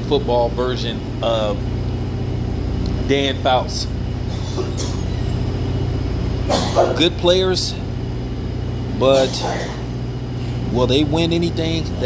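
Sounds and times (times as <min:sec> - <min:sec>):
motor humming with pulsing rumble: 0:00.0 - 0:12.0.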